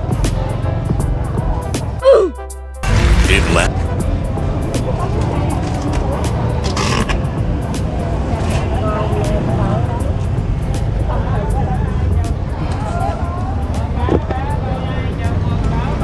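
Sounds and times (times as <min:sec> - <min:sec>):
faint voices and chatter: 0:03.0 - 0:16.0.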